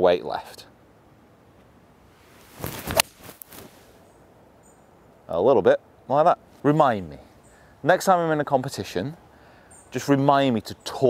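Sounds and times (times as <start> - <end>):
golf club swish: 2.2 - 4.0
golf ball impact crack: 2.6 - 3.8.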